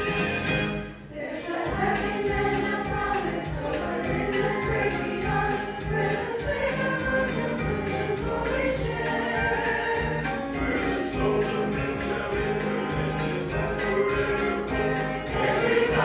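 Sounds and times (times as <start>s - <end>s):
choir singing long notes: 0.0s - 16.0s.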